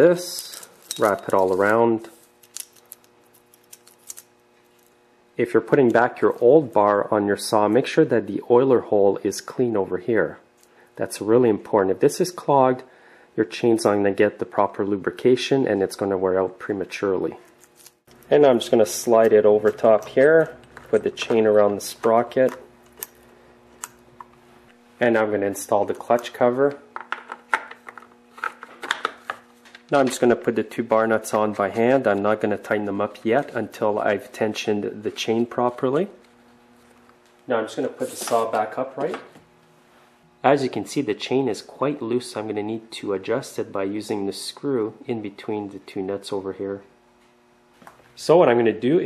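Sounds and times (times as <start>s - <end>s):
faint steady hum: 0.0s - 49.0s.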